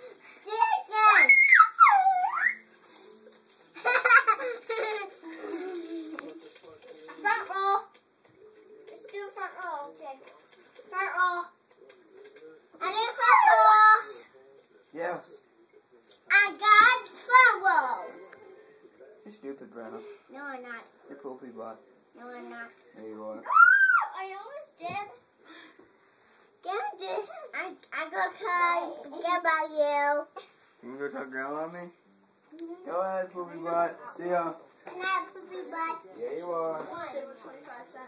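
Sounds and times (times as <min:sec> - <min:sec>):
children squealing and chattering: 0:00.1 - 0:02.8, 0:23.4 - 0:24.6.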